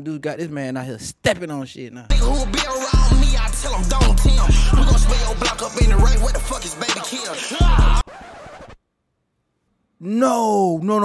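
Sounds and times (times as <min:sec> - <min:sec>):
rap music: 0:02.1 - 0:08.1.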